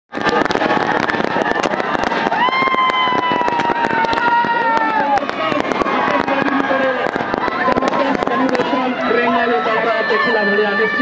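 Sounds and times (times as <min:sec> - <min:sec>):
crowd shouting and cheering: 0:00.1 - 0:11.0
firecrackers crackling: 0:00.1 - 0:11.0.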